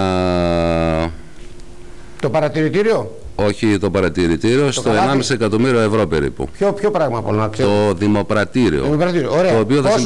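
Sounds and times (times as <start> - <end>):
man's drawn-out hesitation sound: 4.6 - 8.0.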